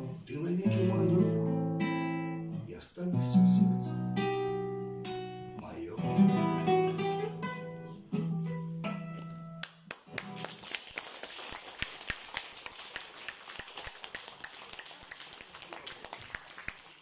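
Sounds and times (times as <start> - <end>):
acoustic guitar chord ringing: 3.2 - 9.6
audience applauding: 9.6 - 17.0.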